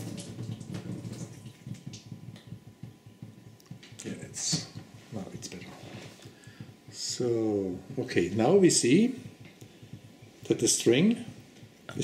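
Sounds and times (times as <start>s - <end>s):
water trickling and dripping: 0.0s - 3.8s.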